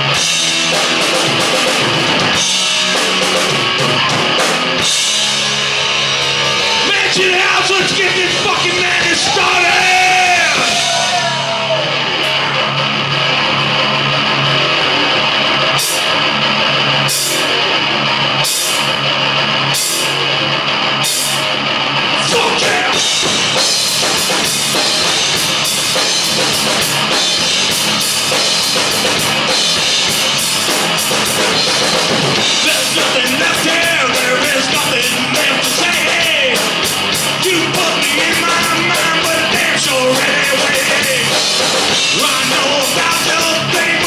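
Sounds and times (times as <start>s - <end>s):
live rock band playing: 0.0s - 44.0s.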